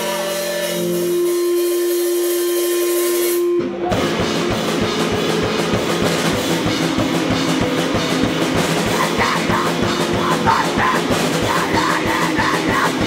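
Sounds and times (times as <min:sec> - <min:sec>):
distorted electric guitar: 0:00.0 - 0:13.0
drum kit fast beat: 0:00.0 - 0:13.0
steady held tone: 0:00.0 - 0:13.0.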